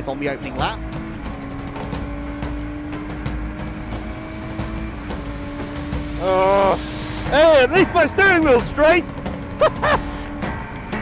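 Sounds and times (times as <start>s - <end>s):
race car engine from cockpit: 0.0s - 11.0s.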